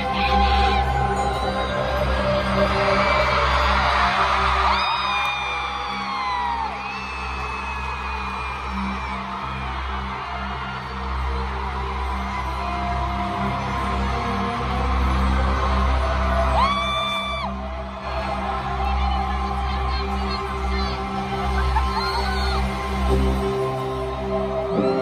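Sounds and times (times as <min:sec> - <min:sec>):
fans screaming: 0:00.0 - 0:25.0
pop song through loudspeakers: 0:00.0 - 0:25.0.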